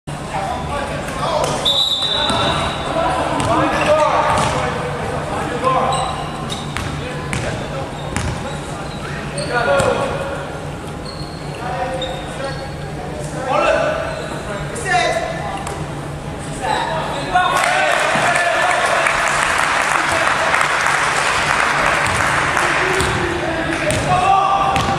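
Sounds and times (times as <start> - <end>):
players shouting: 16.6 - 24.9.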